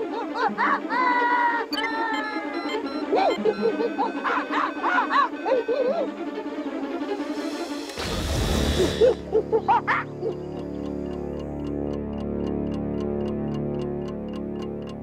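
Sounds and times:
background music: 0:00.0 - 0:15.0
cartoon ape-men hooting: 0:00.4 - 0:06.2.

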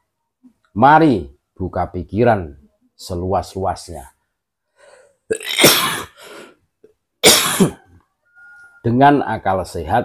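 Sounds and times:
man coughing: 0:05.3 - 0:06.2, 0:07.2 - 0:07.9.

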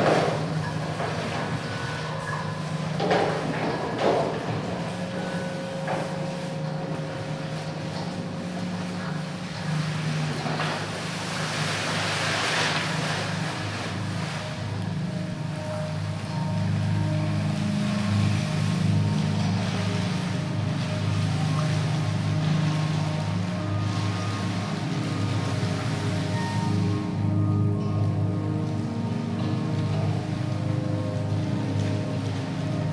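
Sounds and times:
faint high held tones: 0:00.0 - 0:32.9
hiss wash: 0:00.0 - 0:32.9
low drone hum: 0:00.0 - 0:32.9.

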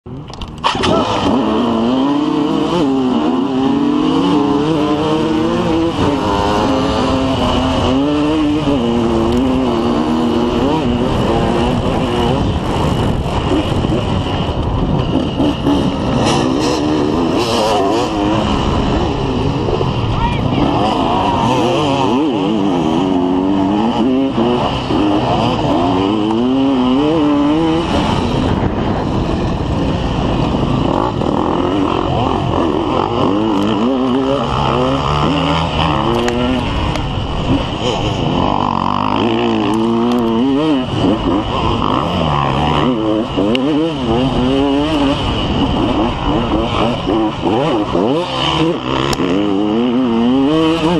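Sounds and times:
dirt bike engine revving: 0:00.1 - 0:50.9
wind noise: 0:00.1 - 0:50.9.

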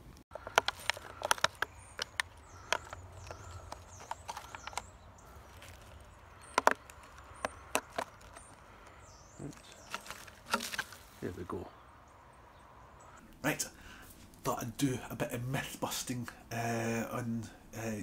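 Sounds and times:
plastic pots clicking: 0:00.3 - 0:11.0.

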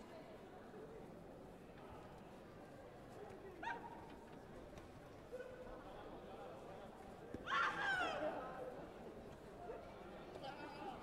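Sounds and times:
murmur of sports hall: 0:00.0 - 0:11.0.

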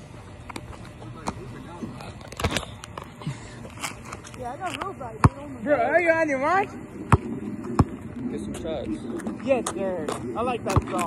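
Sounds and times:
basketball bouncing on hard court: 0:05.2 - 0:05.4.

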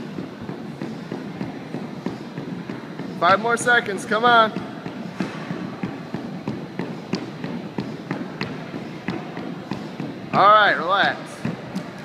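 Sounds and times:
battle rope slapping wooden floor: 0:00.0 - 0:12.0.

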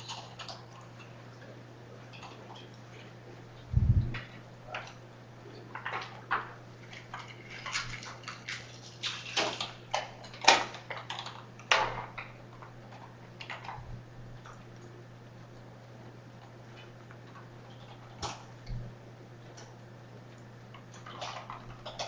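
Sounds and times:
low hum: 0:03.4 - 0:04.7.

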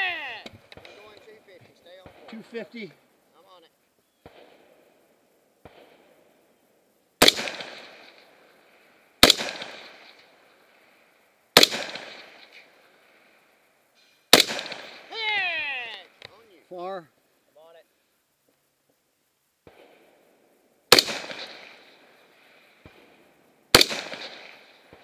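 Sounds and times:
rifle shots with echo: 0:00.7 - 0:02.8, 0:04.2 - 0:04.9, 0:05.6 - 0:06.4, 0:07.2 - 0:10.8, 0:11.6 - 0:13.2, 0:14.3 - 0:15.4, 0:19.6 - 0:20.2, 0:20.9 - 0:25.0.

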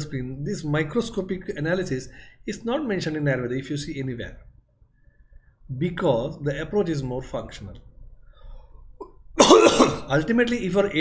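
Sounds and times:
man coughing: 0:09.0 - 0:10.1.

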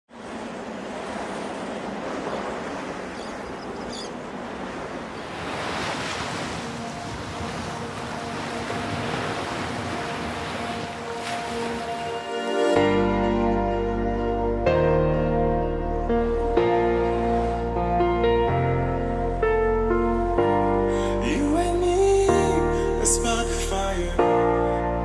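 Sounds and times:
waves washing onto beach: 0:00.1 - 0:12.6
wind: 0:00.1 - 0:25.0.

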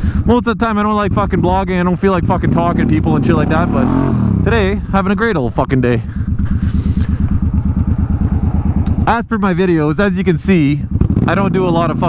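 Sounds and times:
motorcycle engine at low revs: 0:01.0 - 0:12.0.

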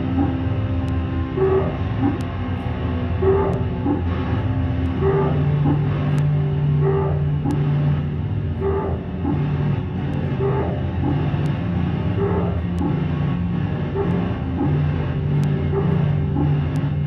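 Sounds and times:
faint clicks: 0:00.0 - 0:04.1, 0:04.8 - 0:07.8, 0:10.1 - 0:13.2, 0:14.0 - 0:17.0
low bass drone: 0:00.0 - 0:17.0.

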